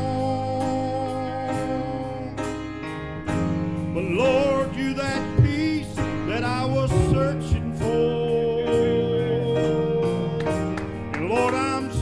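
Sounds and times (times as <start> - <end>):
gospel band music: 0.0 - 12.0.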